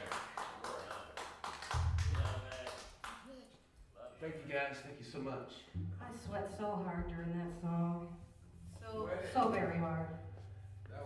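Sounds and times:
people clapping: 0.0 - 3.6
deep low tone: 1.8 - 2.7, 5.8 - 11.0.

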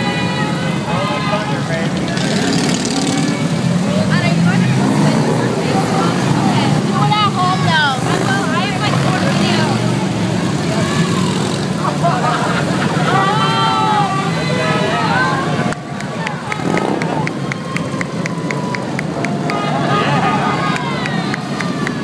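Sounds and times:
motorcycle engines rumbling: 0.0 - 22.0
spectators' voices and calls: 0.0 - 22.0.

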